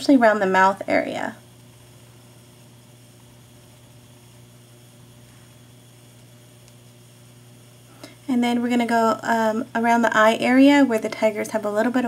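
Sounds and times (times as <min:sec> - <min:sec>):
even hiss: 0:00.0 - 0:12.0
faint low electrical hum: 0:00.0 - 0:12.0.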